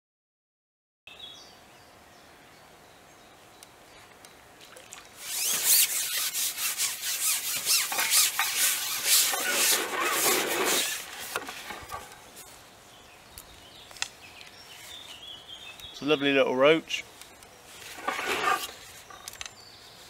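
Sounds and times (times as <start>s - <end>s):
fishing pole rubbing against hands: 5.2s - 11.8s, 17.7s - 19.1s.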